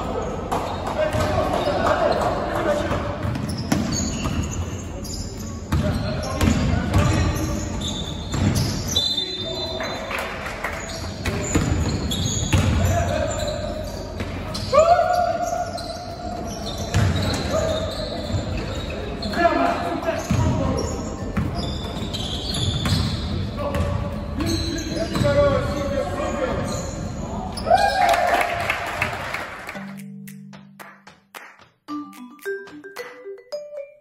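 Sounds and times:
sneakers squeaking: 0.0s - 28.2s
basketball bouncing: 11.3s - 12.8s, 22.6s - 24.0s.

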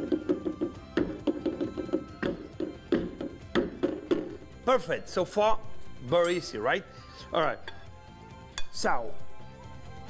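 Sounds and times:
plucked background music: 0.0s - 10.0s.

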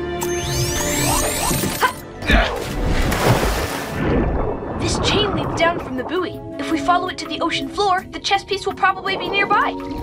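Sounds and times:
background music: 0.0s - 10.0s
splash into water: 2.4s - 6.1s
bubbling underwater wash: 3.2s - 6.8s.

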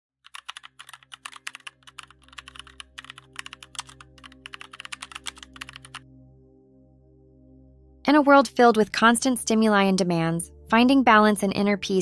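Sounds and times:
keyboard typing clicks: 0.2s - 6.0s
ambient music drone: 1.5s - 12.0s.

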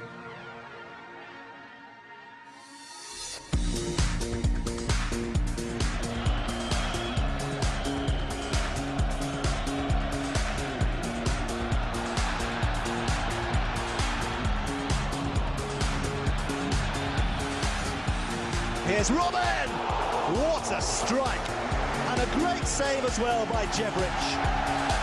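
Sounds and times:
background music with steady beat: 0.0s - 25.0s.

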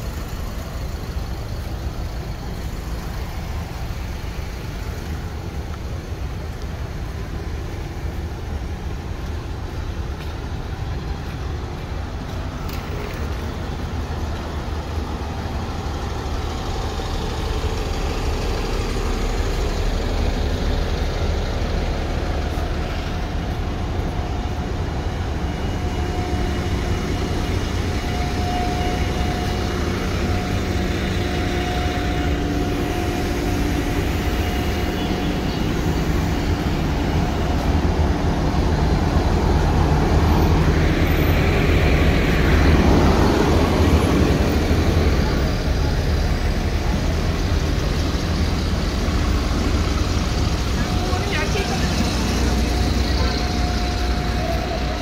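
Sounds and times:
bus engines rumbling: 0.0s - 55.0s.

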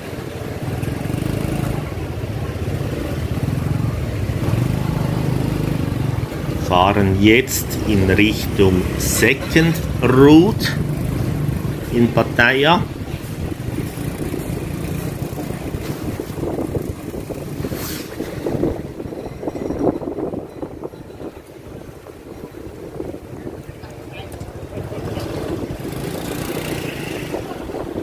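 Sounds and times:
wind noise on microphone: 0.0s - 28.0s
motor scooter engine running: 0.1s - 6.7s, 8.7s - 17.7s, 23.3s - 28.0s.

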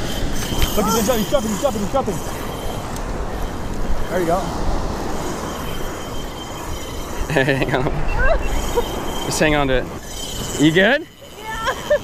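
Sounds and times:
waves breaking on shore: 0.0s - 12.0s
wind buffeting microphone: 0.0s - 12.0s.

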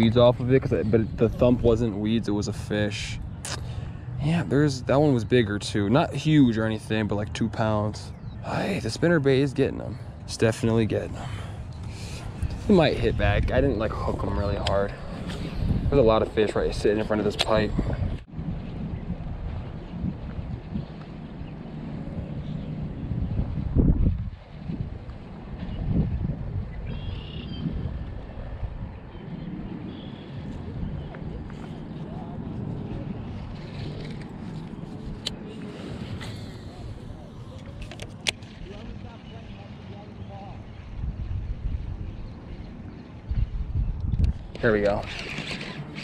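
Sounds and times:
wind buffeting microphone: 0.0s - 46.0s.

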